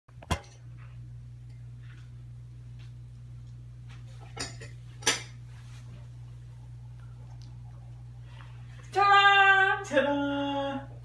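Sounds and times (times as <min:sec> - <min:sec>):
cutlery clinking against dishes: 0:04.3 - 0:05.4.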